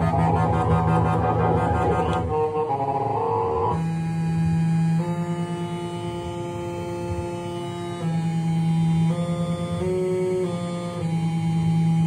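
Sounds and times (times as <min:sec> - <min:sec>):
synthesizer sustained chord: 0:00.0 - 0:11.6.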